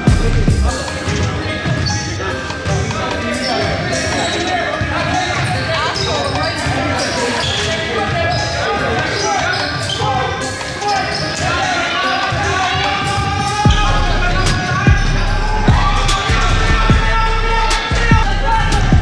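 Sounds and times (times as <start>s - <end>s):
players shouting in a hall: 0.0s - 19.0s.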